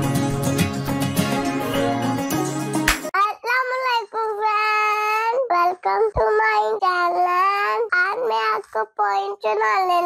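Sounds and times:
young child singing: 0:03.2 - 0:10.0.

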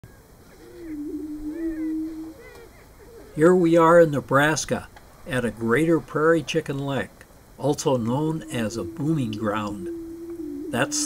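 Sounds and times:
higher gliding bird calls: 0:00.1 - 0:04.0, 0:07.6 - 0:11.0
prairie chicken low booming moan: 0:00.4 - 0:03.7, 0:07.9 - 0:11.0.

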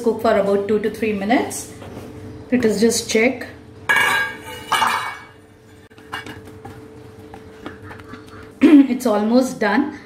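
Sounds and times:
lid clattering set down: 0:03.9 - 0:05.4
metal pot lid clinking: 0:03.9 - 0:05.4.

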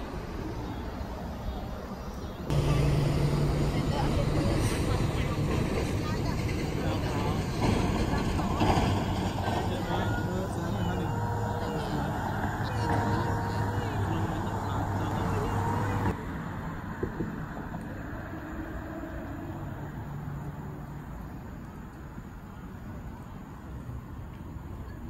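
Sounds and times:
passing road traffic: 0:00.0 - 0:25.0
people's voices: 0:02.4 - 0:16.2.

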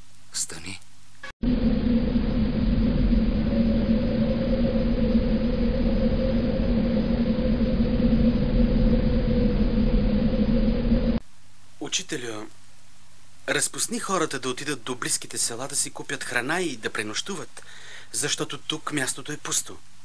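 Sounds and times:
steady rumbling with hum: 0:00.0 - 0:20.0.

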